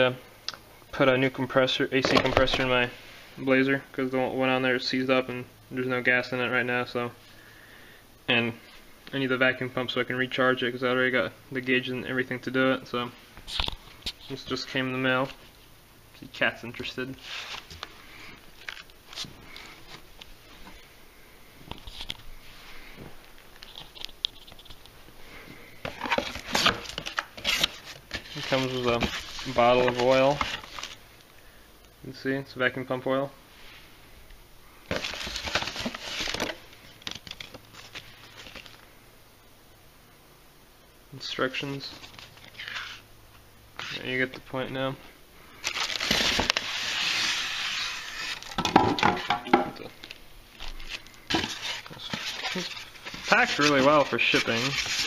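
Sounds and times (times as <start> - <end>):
foam and cardboard rustling: 25.8 - 31.0, 34.9 - 38.8, 50.5 - 55.0.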